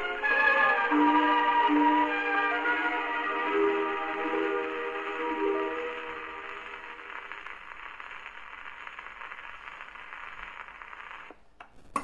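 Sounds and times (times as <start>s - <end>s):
gramophone record music: 0.0s - 12.0s
record surface hiss and crackle: 0.0s - 12.0s.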